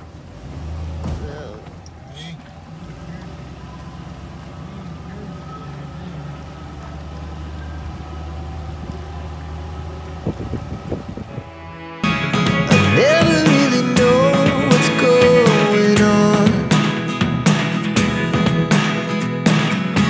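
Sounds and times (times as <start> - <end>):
engine humming: 0.0 - 20.0.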